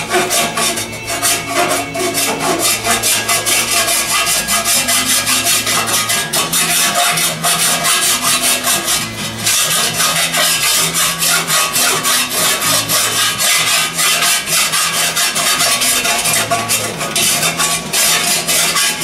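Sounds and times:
file rasping over metal: 0.0s - 19.0s.

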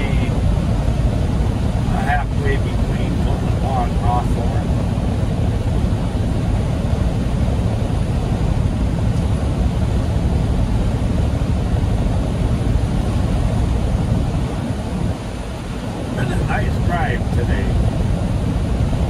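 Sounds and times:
truck engine and road drone: 0.0s - 19.0s.

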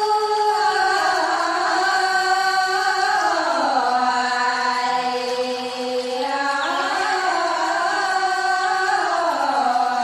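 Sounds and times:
women singing a folk song: 0.0s - 10.0s.

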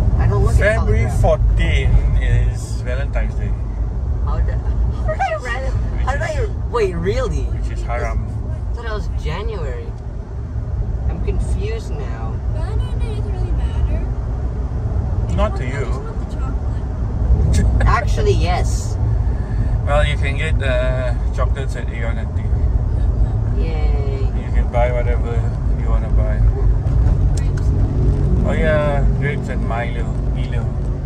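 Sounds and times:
car rumble from inside cabin: 0.0s - 31.0s.

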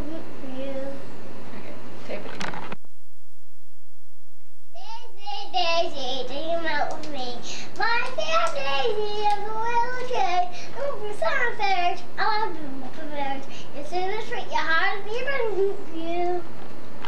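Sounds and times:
young boy singing: 0.0s - 1.0s, 4.8s - 16.5s.

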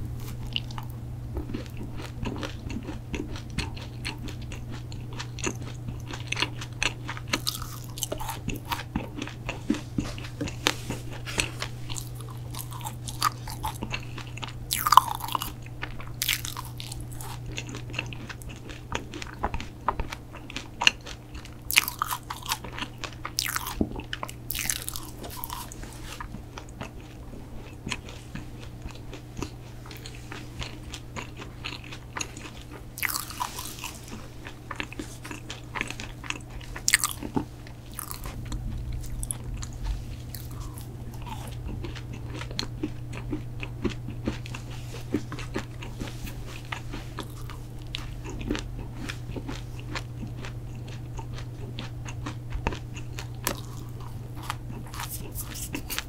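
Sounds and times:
crumbly crunches: 0.1s - 56.0s
chewing cookies: 0.2s - 56.0s
wet mouth sounds: 54.7s - 56.0s.

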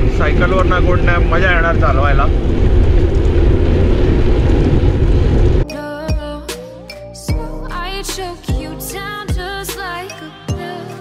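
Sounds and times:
wind rumbling on microphone: 0.0s - 5.7s.

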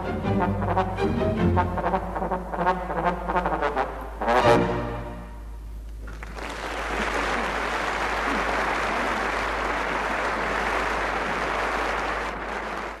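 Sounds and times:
audience applauding: 6.0s - 13.0s.

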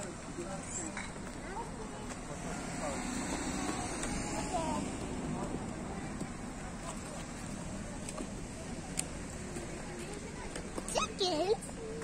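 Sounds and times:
indistinct voices of passers-by: 0.0s - 12.0s.

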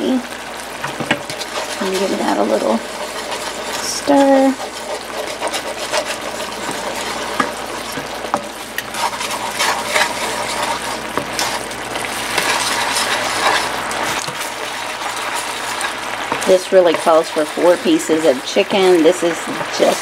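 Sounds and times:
sauce bubbling: 0.0s - 20.0s
spatula scraping a skillet: 0.2s - 20.0s.

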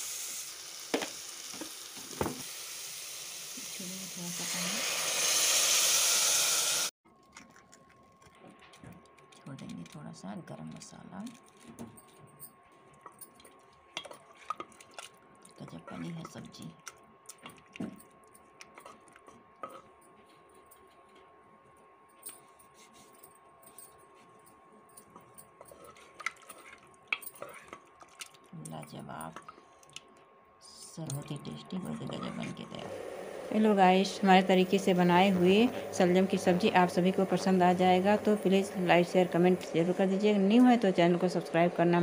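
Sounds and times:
water sizzling in hot pot: 0.0s - 6.9s.

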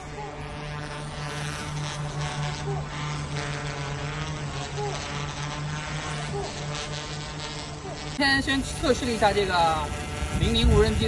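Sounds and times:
drone propeller hum: 0.0s - 11.0s.

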